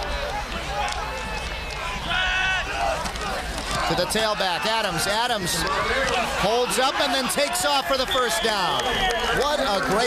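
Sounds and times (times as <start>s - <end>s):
distant voices and shouts: 0.0s - 10.0s
steady crowd murmur: 0.0s - 10.0s.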